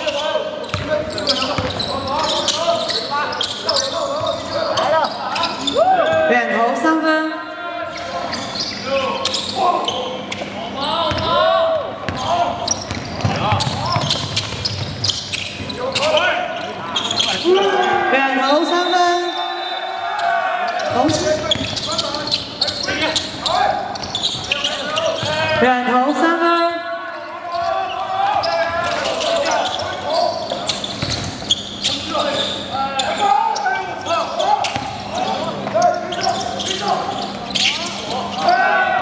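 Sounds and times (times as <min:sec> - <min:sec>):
sneakers squeaking on court: 0:00.0 - 0:06.2, 0:07.9 - 0:11.4, 0:12.0 - 0:25.6, 0:27.4 - 0:38.5
basketball bouncing: 0:00.7 - 0:01.9, 0:11.1 - 0:11.3, 0:12.9 - 0:15.1
players calling out: 0:07.4 - 0:39.0.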